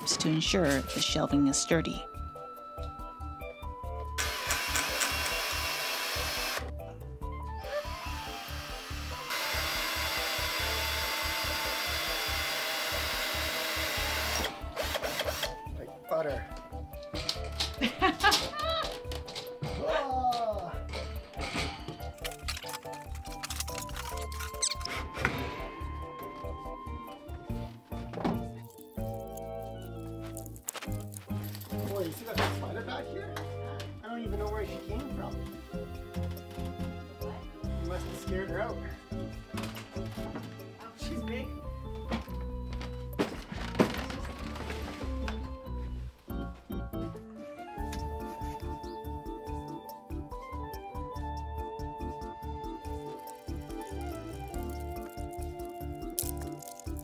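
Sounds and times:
background music: 0.0 - 57.0
power tool running: 4.2 - 6.7, 7.7 - 15.6.

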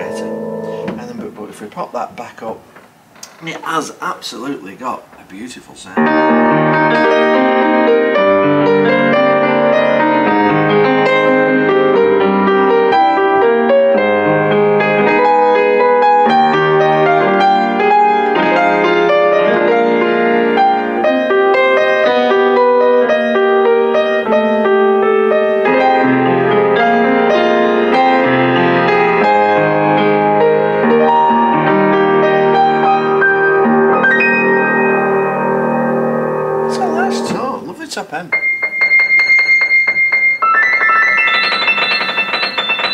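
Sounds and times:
upright piano playing quick notes: 0.0 - 2.1, 6.0 - 42.9.

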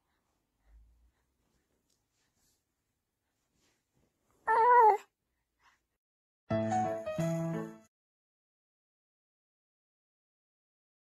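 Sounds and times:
infant cooing: 4.5 - 5.1.

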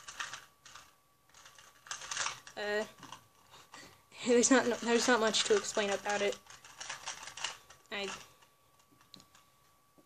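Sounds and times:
speed cube clicking: 0.0 - 9.4.

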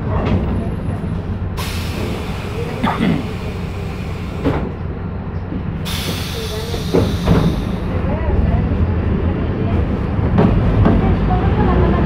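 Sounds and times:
faint voices: 0.0 - 12.0
vehicle cabin rumble: 0.0 - 12.0
hiss: 1.6 - 4.5, 5.9 - 7.8.

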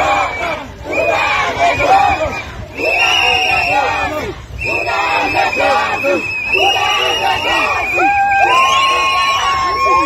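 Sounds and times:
crowd shouting slogans: 0.0 - 10.0.

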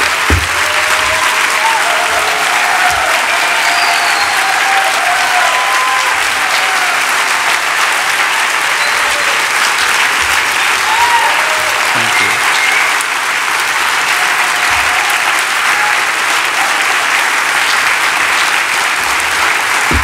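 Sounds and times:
audience applauding: 0.0 - 20.0
voices calling out: 11.9 - 12.8.

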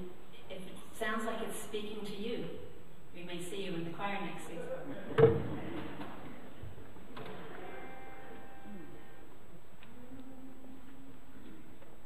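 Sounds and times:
woman's voice: 0.0 - 2.6, 3.2 - 4.7.

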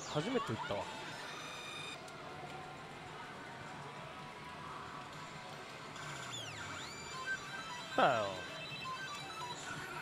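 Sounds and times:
pachinko hall din: 6.3 - 10.0
slot machine electronic tone: 6.4 - 10.0.

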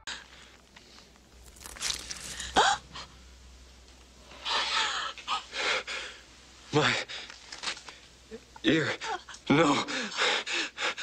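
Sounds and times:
hissing crackling noises: 0.1 - 9.5.

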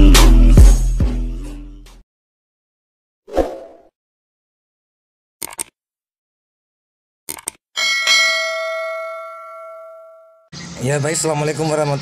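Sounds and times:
bell chime ringing: 7.8 - 10.5.

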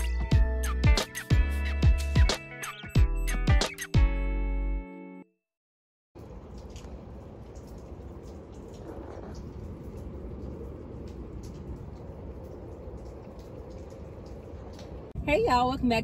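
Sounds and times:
wind buffeting microphone: 6.7 - 15.2.

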